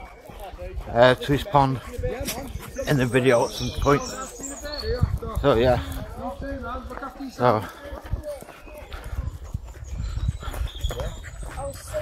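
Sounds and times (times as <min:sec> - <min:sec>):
wind rumble: 0:01.8 - 0:07.2.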